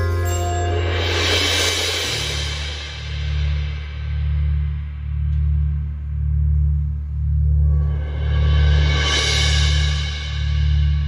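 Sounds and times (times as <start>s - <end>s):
cymbals and gong ringing: 0.0s - 5.7s
low electronic bass note: 2.0s - 8.6s.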